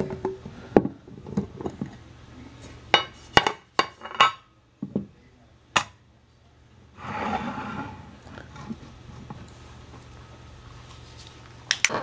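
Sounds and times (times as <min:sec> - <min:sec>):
soft rustle: 0:09.3 - 0:11.6.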